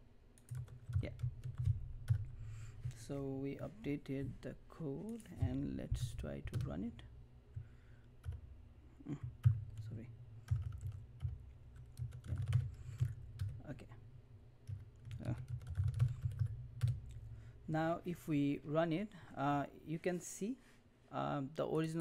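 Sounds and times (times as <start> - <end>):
computer keyboard typing: 0.4 - 3.0, 6.4 - 6.9, 8.2 - 8.4, 9.2 - 13.7, 14.6 - 17.2.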